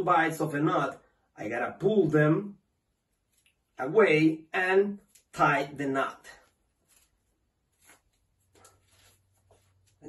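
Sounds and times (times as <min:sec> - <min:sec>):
rope rustling: 0:03.0 - 0:03.8, 0:06.2 - 0:10.0.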